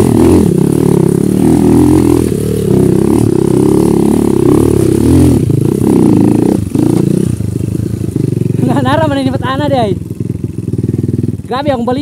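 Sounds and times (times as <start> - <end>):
dirt bike engine idling: 0.0 - 12.0
person talking: 8.6 - 10.0.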